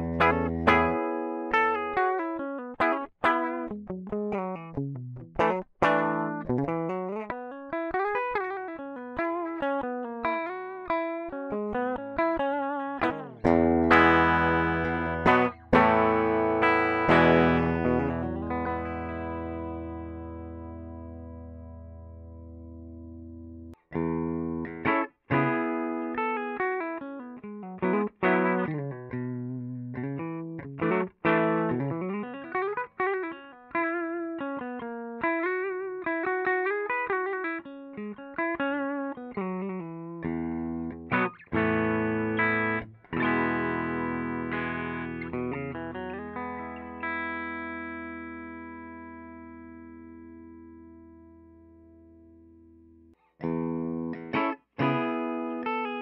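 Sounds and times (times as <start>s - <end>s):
electric guitar chords and runs: 0.0s - 51.8s, 53.4s - 56.0s.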